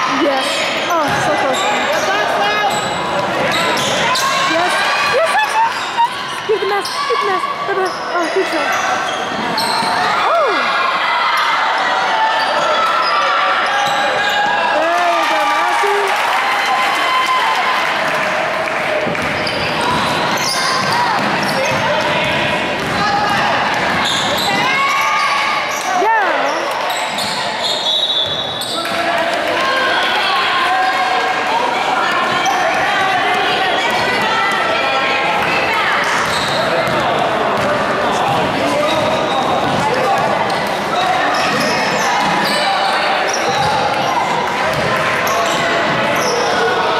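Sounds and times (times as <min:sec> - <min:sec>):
people talking in gymnasium: 0:00.0 - 0:46.9
players' voices echoing: 0:00.0 - 0:46.9
spectators chattering: 0:00.0 - 0:46.9
people shouting: 0:09.9 - 0:17.8.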